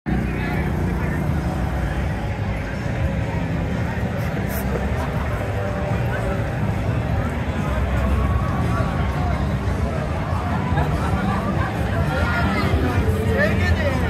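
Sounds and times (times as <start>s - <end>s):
crowd chatter: 0.1s - 14.0s.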